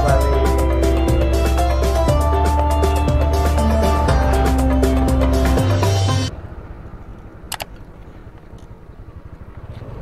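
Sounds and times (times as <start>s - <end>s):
background music: 0.0s - 6.3s
road noise: 0.0s - 10.0s.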